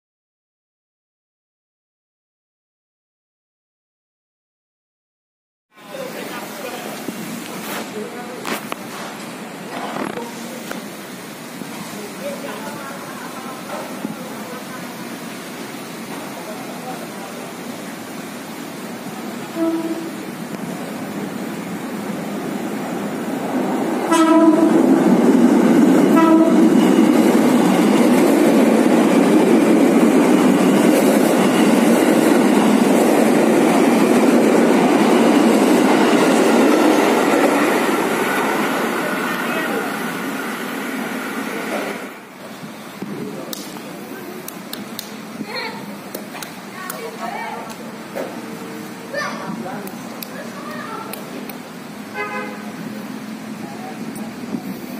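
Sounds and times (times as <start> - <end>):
train wheels passing: 5.8 - 54.9
train horn blasts: 19.5 - 20.2, 24.1 - 24.9, 26.1 - 26.8, 52.1 - 52.8.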